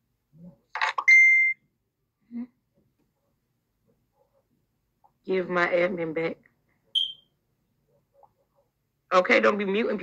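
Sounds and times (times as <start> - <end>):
short high-pitched electronic beep: 7.0 - 7.2.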